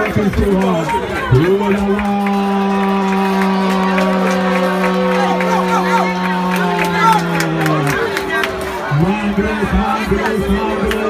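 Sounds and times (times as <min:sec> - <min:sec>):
crowd noise: 0:00.0 - 0:11.0
low held horn note: 0:02.0 - 0:08.8.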